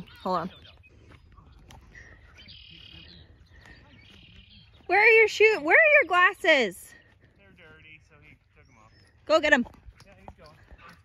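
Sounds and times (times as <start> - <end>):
high bird chirping: 0.0 - 10.5.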